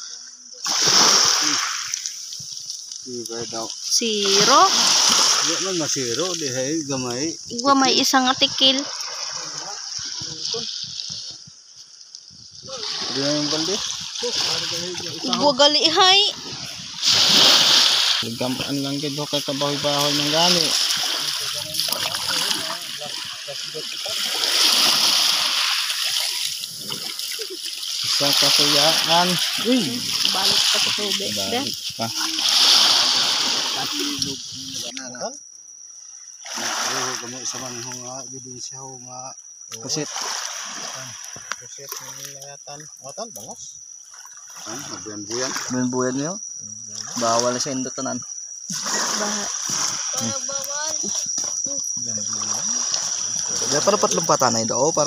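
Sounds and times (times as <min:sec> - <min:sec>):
water splashing and sloshing: 0:00.0 - 0:38.4, 0:39.5 - 0:55.0.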